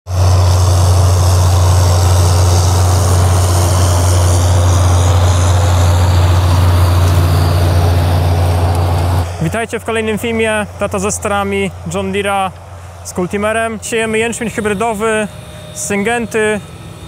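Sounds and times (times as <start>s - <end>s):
tractor diesel engine running: 0.1s - 17.0s.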